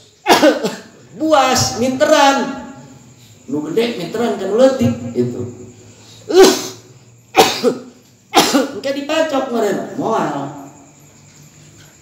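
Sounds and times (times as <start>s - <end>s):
man coughing: 0.2s - 1.0s, 6.3s - 8.8s.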